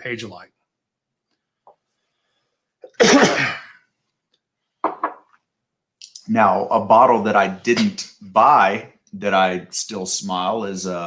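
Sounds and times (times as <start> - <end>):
person sneezing: 2.8 - 3.8.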